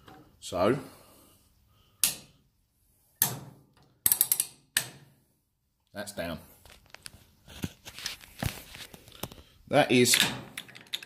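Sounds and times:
sharp metal clicks: 0:03.2 - 0:05.0.

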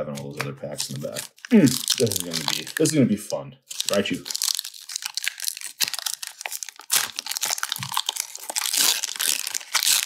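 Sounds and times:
foil wrapper crinkling and tearing: 0:00.7 - 0:03.0, 0:03.7 - 0:10.0.

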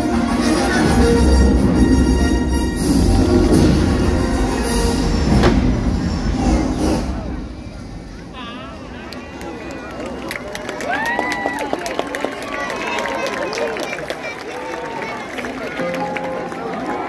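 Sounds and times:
orchestral show music: 0:00.0 - 0:08.2
people clapping: 0:09.1 - 0:17.0
crowd cheering and whistling: 0:09.4 - 0:17.0.

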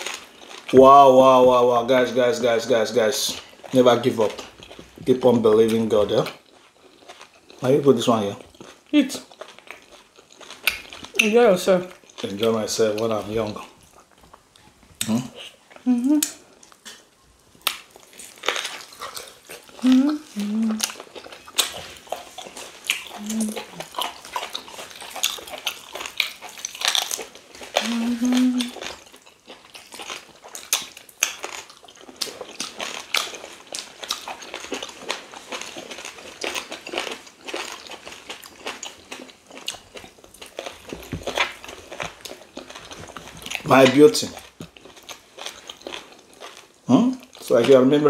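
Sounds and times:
food crunching while chewed: 0:00.0 - 0:48.0.

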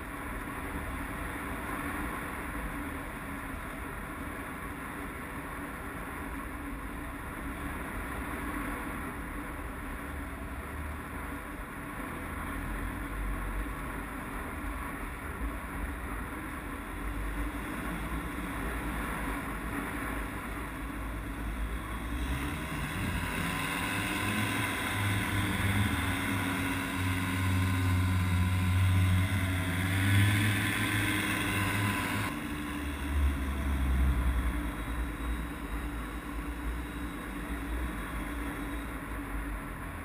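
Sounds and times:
paramotor engine and propeller: 0:16.3 - 0:40.0.

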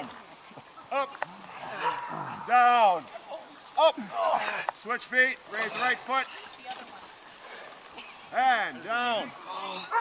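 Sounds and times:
men groaning with strain: 0:01.2 - 0:02.7.

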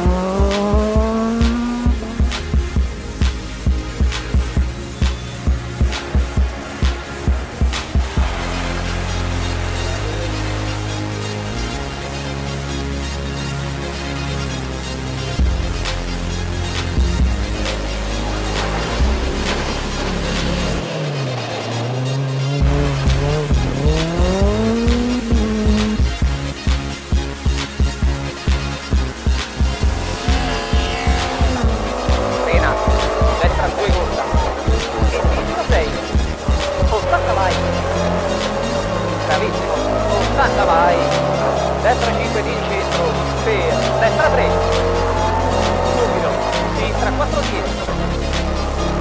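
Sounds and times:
music with heavy beat: 0:00.0 - 0:21.7, 0:22.4 - 0:49.0
rally car engine accelerating: 0:00.0 - 0:49.0.

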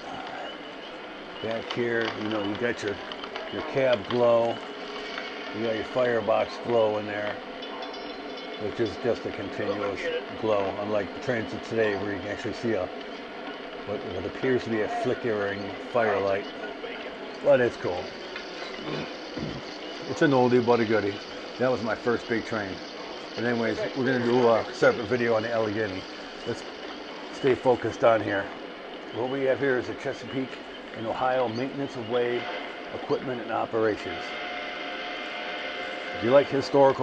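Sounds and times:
model steam locomotive hissing: 0:00.0 - 0:07.4, 0:08.6 - 0:16.4, 0:17.4 - 0:28.6, 0:29.2 - 0:37.0
steady background hum: 0:00.0 - 0:37.0.

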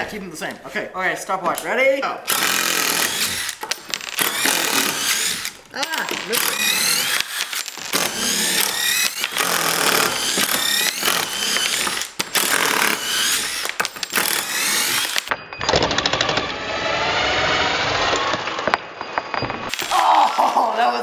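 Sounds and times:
impact drivers whining and rattling: 0:02.2 - 0:20.0.

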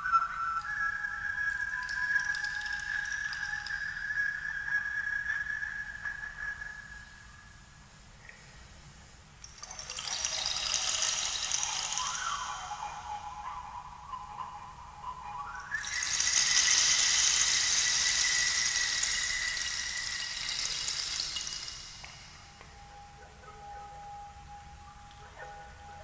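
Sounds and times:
thin squealing tone: 0:09.6 - 0:26.0
breathy hiss: 0:15.8 - 0:22.9.

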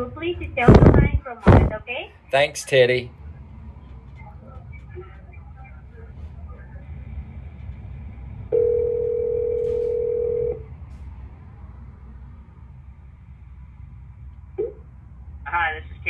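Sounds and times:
low phone line hum: 0:00.0 - 0:16.0
telephone ringback tone: 0:08.5 - 0:10.6.

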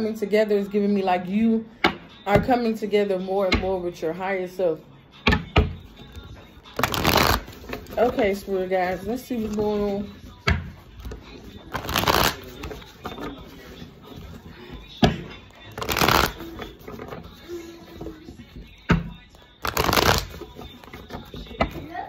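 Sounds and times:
cards clicking and knocking: 0:05.3 - 0:08.2, 0:10.4 - 0:13.6, 0:14.9 - 0:17.3, 0:18.0 - 0:21.9
cards riffle shuffled: 0:06.8 - 0:08.0, 0:11.7 - 0:13.5, 0:15.7 - 0:17.1, 0:19.6 - 0:21.4.

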